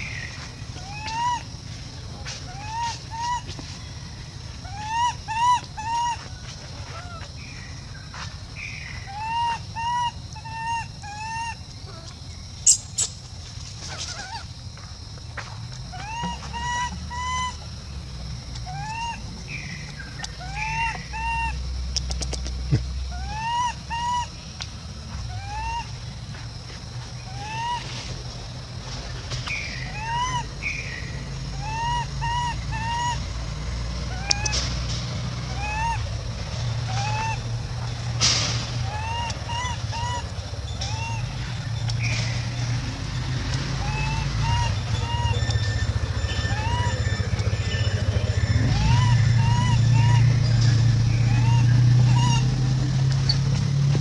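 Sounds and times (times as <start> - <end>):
infant macaque crying: 0.8 - 1.4, 2.5 - 3.5, 4.6 - 6.3, 9.1 - 12.1, 15.9 - 17.6, 18.6 - 19.2, 20.4 - 21.6, 23.1 - 24.4, 25.3 - 26.0, 27.3 - 27.8, 29.9 - 30.5, 31.5 - 33.2, 35.5 - 36.1, 36.9 - 37.4, 38.8 - 41.3, 43.8 - 47.2, 48.3 - 50.3.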